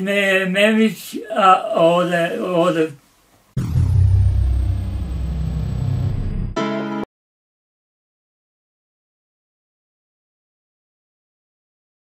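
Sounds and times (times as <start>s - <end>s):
deep steady rumble: 3.6s - 6.6s.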